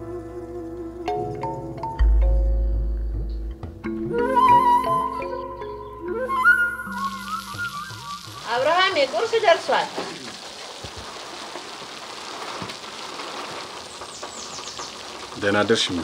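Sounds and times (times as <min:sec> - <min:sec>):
steady rain falling: 0:06.2 - 0:16.0
woman's voice: 0:08.4 - 0:10.0.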